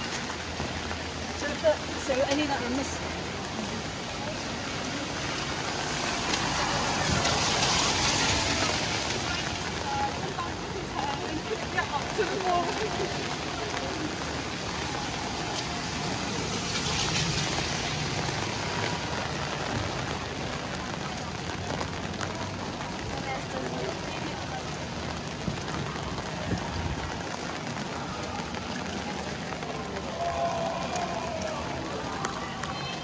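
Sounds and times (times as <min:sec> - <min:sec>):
rain on street: 0:00.0 - 0:33.0.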